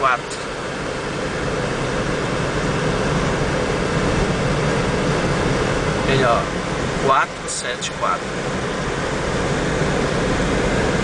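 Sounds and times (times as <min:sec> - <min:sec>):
road and engine noise in car: 0:00.0 - 0:11.0.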